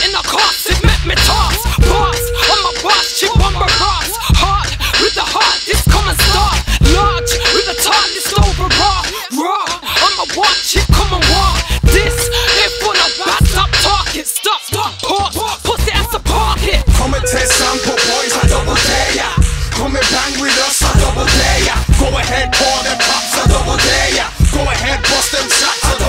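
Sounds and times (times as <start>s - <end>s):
rapping over a beat: 0.0s - 26.0s
deep sub-bass notes: 0.8s - 2.5s, 5.8s - 7.8s, 8.4s - 9.0s, 10.8s - 12.6s, 15.8s - 20.0s, 20.8s - 25.2s.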